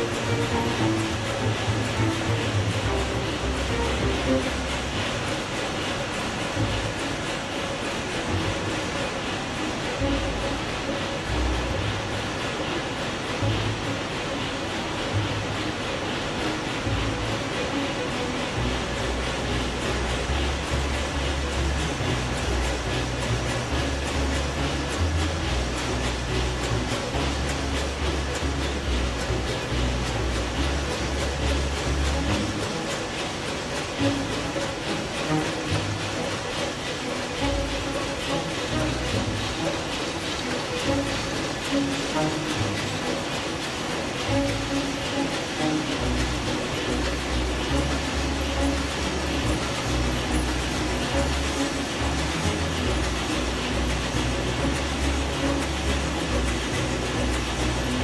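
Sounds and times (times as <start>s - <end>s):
diesel engine clatter and hiss: 0.0s - 58.0s.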